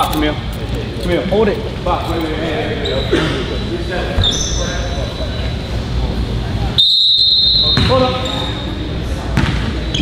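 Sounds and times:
voices echoing in a hall: 0.0 - 10.0
basketball bouncing: 7.8 - 8.1, 9.3 - 9.7.

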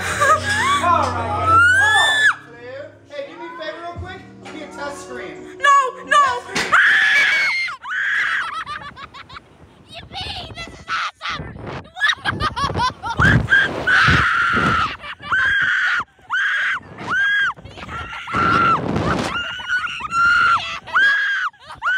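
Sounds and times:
riders screaming: 0.0 - 2.4, 6.7 - 8.5, 13.2 - 21.9.

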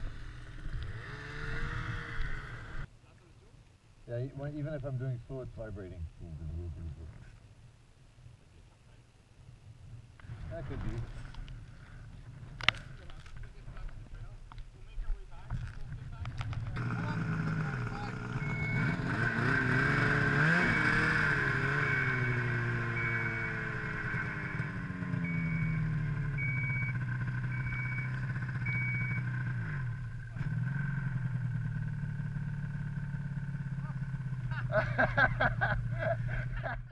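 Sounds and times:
snowmobile engine revving: 0.0 - 2.9, 16.8 - 36.8
short high beeps: 18.4 - 19.0, 20.5 - 24.3, 25.2 - 29.3.

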